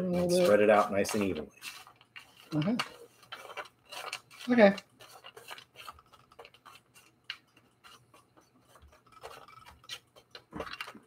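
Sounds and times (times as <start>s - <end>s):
spatula scraping snack mix on pan: 0.2s - 11.0s.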